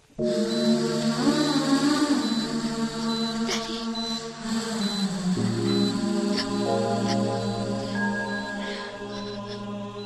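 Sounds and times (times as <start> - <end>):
droning chant-like score: 0.2 - 10.0.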